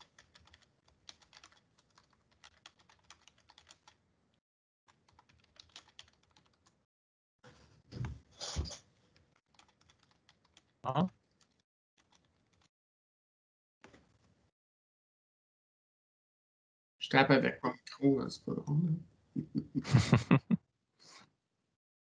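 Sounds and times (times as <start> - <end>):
computer keyboard typing: 0.0 - 4.0, 4.9 - 6.8, 9.4 - 12.7.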